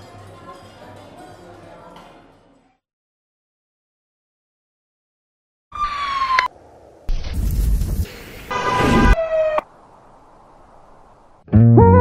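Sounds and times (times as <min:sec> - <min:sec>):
electronic whistle-like tone: 0:08.5 - 0:09.6
low hiss: 0:09.7 - 0:11.4.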